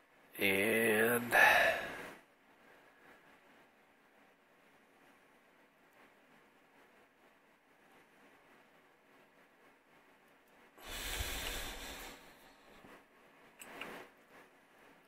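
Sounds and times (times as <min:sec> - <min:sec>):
breath close to microphone: 0:01.3 - 0:03.2, 0:10.8 - 0:12.9.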